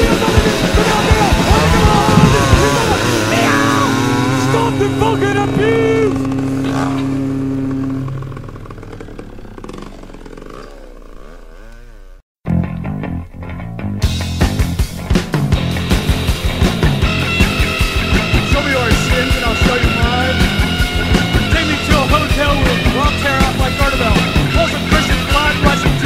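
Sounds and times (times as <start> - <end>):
punk band playing: 0.0 - 6.5, 12.5 - 26.0
sliding high guitar notes: 0.0 - 8.8.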